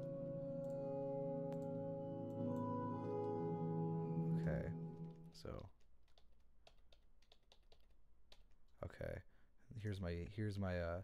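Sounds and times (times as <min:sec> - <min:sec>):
typing on keyboard: 0:05.0 - 0:08.7.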